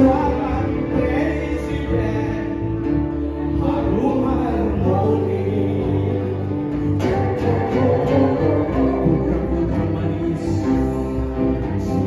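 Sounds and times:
acoustic guitar: 0.0 - 12.0
bass guitar: 0.0 - 12.0
drums: 0.0 - 12.0
man and woman singing together: 3.5 - 12.0.

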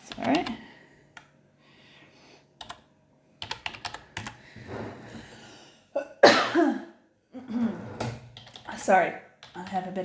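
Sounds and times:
woman coughing: 6.0 - 7.0.

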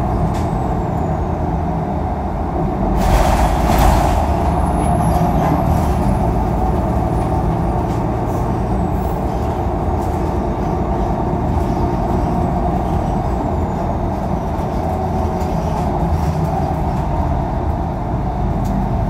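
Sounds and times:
bus engine and road drone: 0.0 - 19.0.

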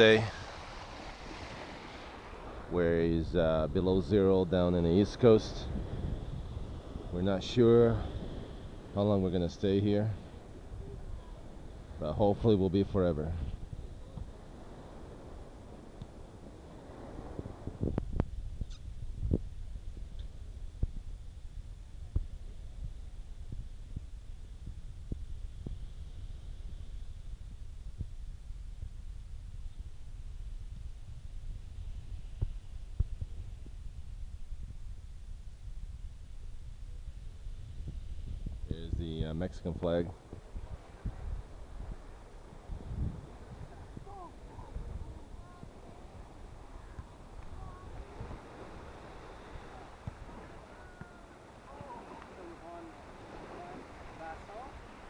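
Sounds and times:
wind rumbling on microphone: 0.0 - 55.0
faint distant voices: 43.6 - 55.0.

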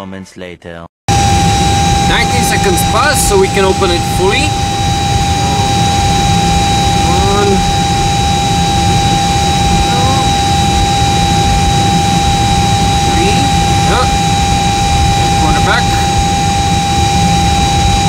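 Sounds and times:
machinery drone: 1.1 - 18.0
whining tones: 1.1 - 18.0.

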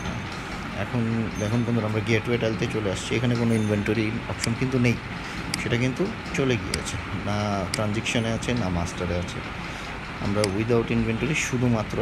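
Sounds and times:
man speaking: 0.8 - 9.5, 10.2 - 12.0.

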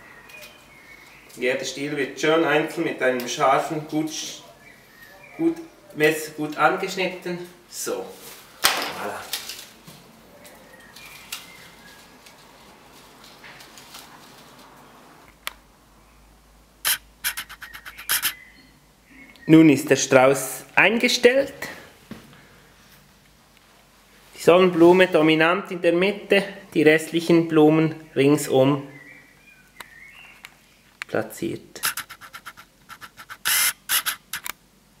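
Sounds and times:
rustling scrapes: 11.0 - 15.0, 16.9 - 18.4, 31.8 - 34.4
short scratching and rustling: 16.8 - 18.4, 31.8 - 34.5.

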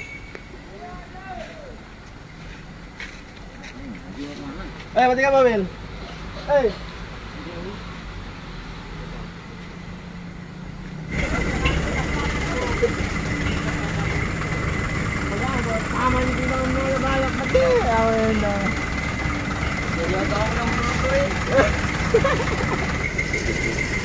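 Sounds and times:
voices talking: 0.0 - 2.0, 11.0 - 24.0
truck engine idling: 11.0 - 24.0.

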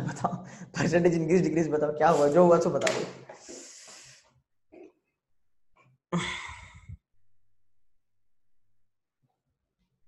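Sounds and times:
person breathing: 0.4 - 0.8, 3.3 - 4.4, 6.2 - 7.0.

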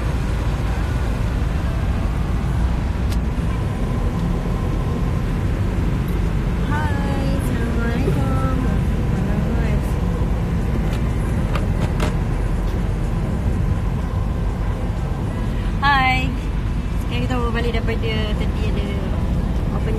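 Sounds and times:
car engine rumble: 0.0 - 19.9
road noise inside car: 0.0 - 19.9.

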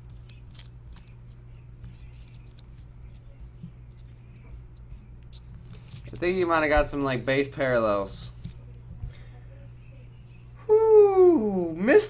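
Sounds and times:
trading cards sliding: 0.0 - 8.7
steady low hum: 0.0 - 12.0.

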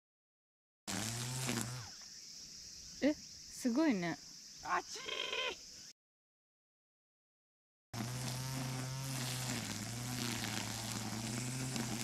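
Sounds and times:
string trimmer cutting grass: 0.9 - 2.0, 8.0 - 12.0.

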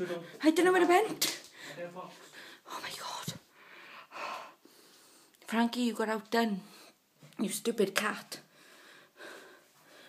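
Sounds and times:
person whispering: 2.6 - 3.5.

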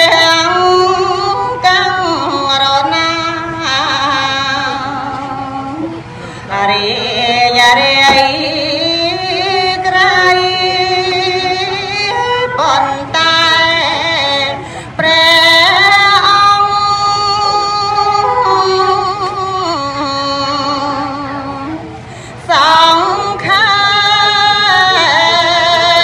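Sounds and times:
woman chanting into a microphone: 0.0 - 26.0.

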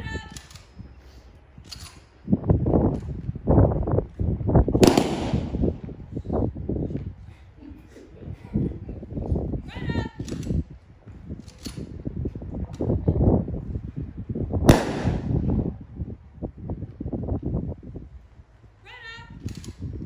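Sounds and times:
rifle volley crack: 4.8 - 5.9, 14.6 - 15.7.

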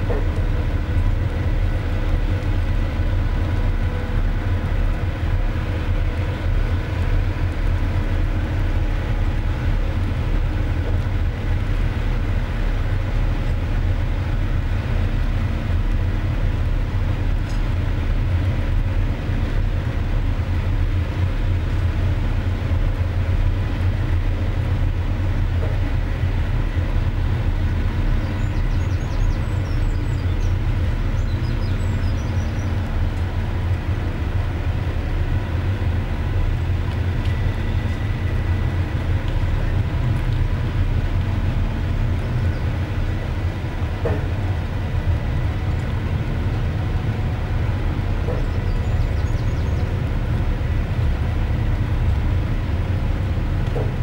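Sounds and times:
ferry diesel engines droning: 0.0 - 54.0.

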